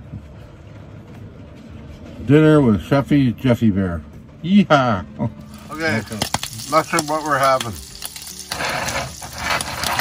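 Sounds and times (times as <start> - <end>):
sausages sizzling in a skillet: 5.4 - 10.0.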